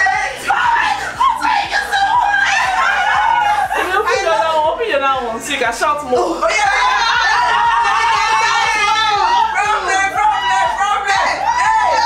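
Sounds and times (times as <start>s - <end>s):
women laughing and exclaiming: 0.0s - 5.0s, 6.3s - 12.0s.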